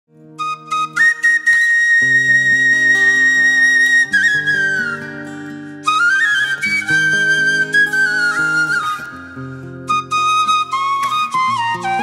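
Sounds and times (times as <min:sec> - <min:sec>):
bamboo flute playing: 0:00.4 - 0:12.0.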